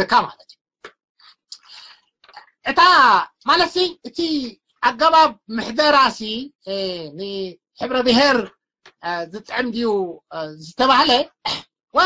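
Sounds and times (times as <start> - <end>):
person speaking loudly: 0.0 - 0.4, 1.5 - 12.0.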